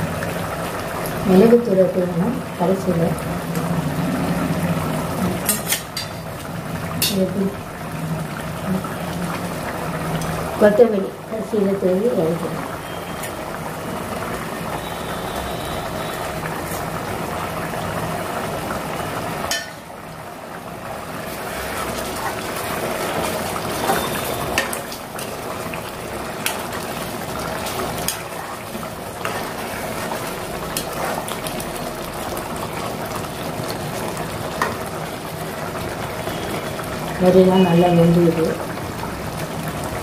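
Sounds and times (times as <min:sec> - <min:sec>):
gravy bubbling in a pot: 0:00.0 - 0:40.0
ladle stirring: 0:21.2 - 0:35.0.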